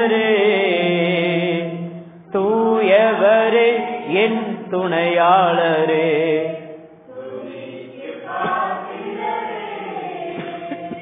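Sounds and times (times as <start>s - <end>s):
congregation singing a hymn: 0.0s - 11.0s.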